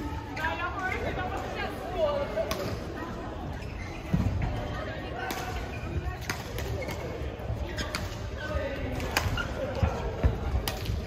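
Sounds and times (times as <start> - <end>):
echoing indistinct voices: 0.0 - 11.0.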